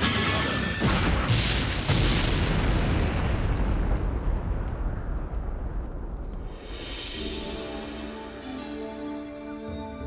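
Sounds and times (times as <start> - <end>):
deep rumbling boom: 0.8 - 7.2.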